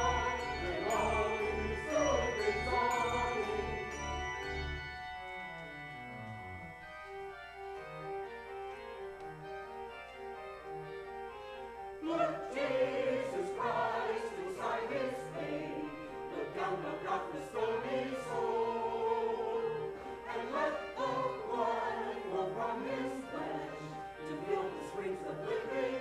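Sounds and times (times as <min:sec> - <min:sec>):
voices singing a hymn: 0:00.0 - 0:04.6, 0:12.0 - 0:26.0
pipe organ: 0:00.0 - 0:26.0.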